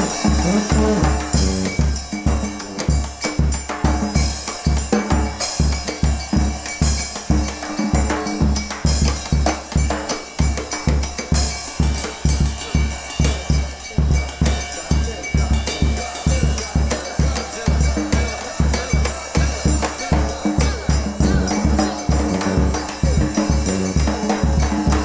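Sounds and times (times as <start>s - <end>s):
brass band playing: 0.0s - 3.0s, 21.3s - 24.1s
drum hits: 0.0s - 3.2s.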